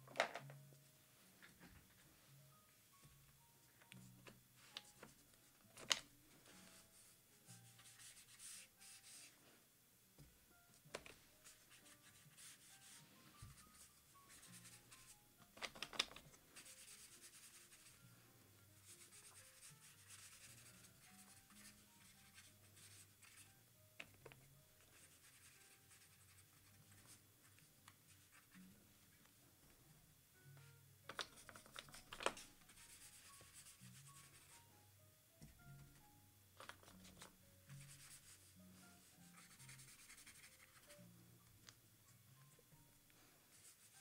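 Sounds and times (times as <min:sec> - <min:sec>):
soft background music: 0:00.0 - 0:44.0
paintbrush swishing on paper: 0:06.5 - 0:09.4, 0:11.4 - 0:15.1, 0:16.6 - 0:18.0, 0:18.8 - 0:23.4, 0:37.7 - 0:41.0.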